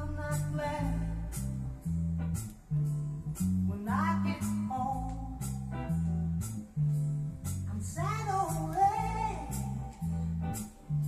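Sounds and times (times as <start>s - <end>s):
bass line: 0.0s - 11.0s
guitar: 0.0s - 11.0s.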